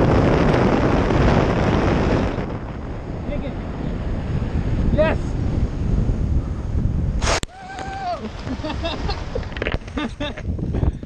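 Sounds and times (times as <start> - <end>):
wind rushing over microphone: 0.0 - 11.0
loud burst of landing noise: 7.2 - 9.1.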